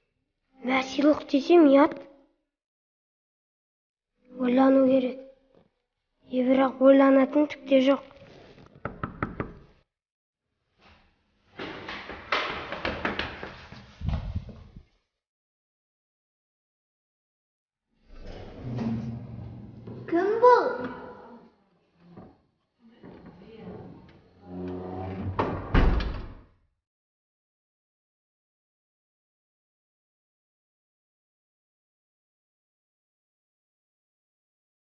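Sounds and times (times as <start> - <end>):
knocks on a door: 8.8 - 9.7.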